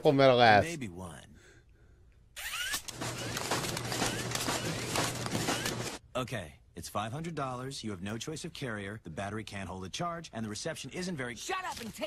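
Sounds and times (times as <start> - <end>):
mechanical clatter of rapid clicks: 2.7 - 6.0.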